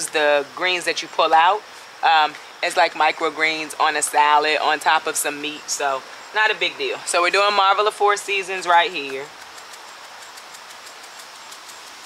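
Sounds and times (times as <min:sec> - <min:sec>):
outdoor background hiss: 0:00.0 - 0:12.0
faint fast high ticking: 0:09.3 - 0:12.0.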